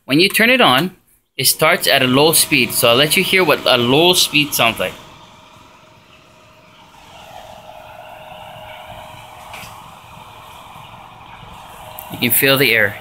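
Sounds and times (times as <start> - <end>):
cooler fan running: 1.4 - 13.0.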